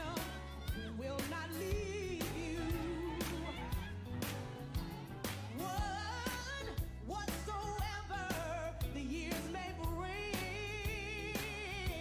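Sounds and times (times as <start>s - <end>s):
bass and drums beat: 0.0s - 12.0s
person singing with vibrato: 0.0s - 12.0s.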